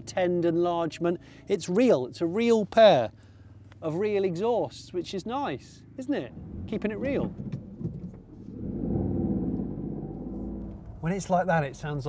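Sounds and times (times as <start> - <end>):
car engine thrum from inside: 5.3 - 12.0.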